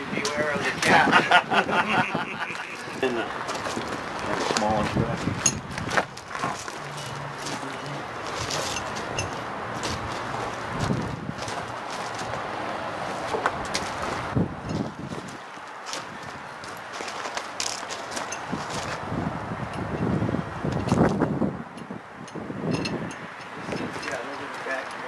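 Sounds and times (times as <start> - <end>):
outdoor background noise: 0.0 - 25.0
footsteps: 2.4 - 19.0.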